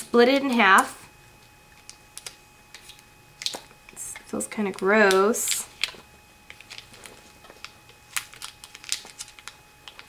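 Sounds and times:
packets clicking and crinkling: 1.7 - 10.0.

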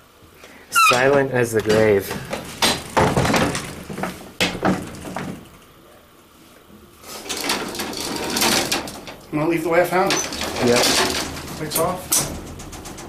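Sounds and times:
metal gate rattling open: 7.2 - 9.2, 10.0 - 13.0
clicks and knocks of metal gate: 10.0 - 13.0.

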